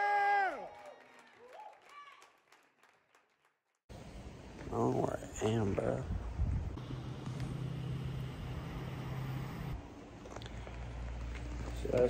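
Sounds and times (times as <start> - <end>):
outdoor background noise: 3.9 - 12.0.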